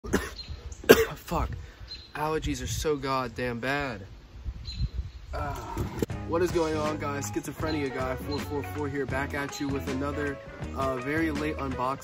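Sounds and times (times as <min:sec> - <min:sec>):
man coughing: 0:00.0 - 0:01.4.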